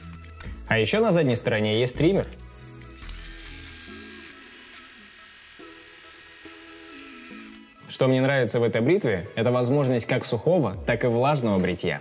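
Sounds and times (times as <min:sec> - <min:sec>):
soft background music: 0:00.0 - 0:12.0
electric shaver buzzing: 0:02.9 - 0:07.8.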